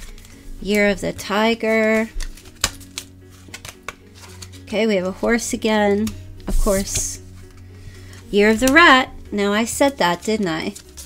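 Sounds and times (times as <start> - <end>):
faint background music: 0.0 - 11.0
tarot cards clicking on table: 1.6 - 4.5.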